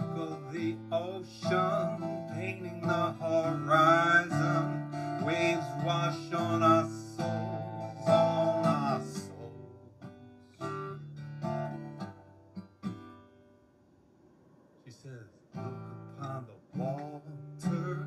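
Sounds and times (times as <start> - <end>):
man singing: 0.0 - 9.8, 16.2 - 18.0
acoustic guitar strumming: 0.0 - 13.8, 15.5 - 18.0.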